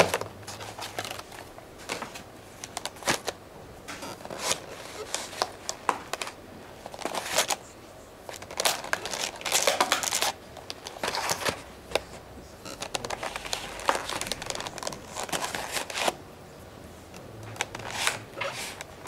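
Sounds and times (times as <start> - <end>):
plastic and paper crinkling: 0.0 - 3.4, 4.0 - 16.2, 17.4 - 19.0.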